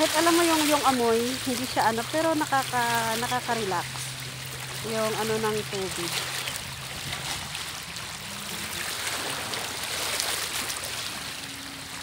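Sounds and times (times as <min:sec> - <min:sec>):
sea water lapping at shore: 0:00.0 - 0:12.0.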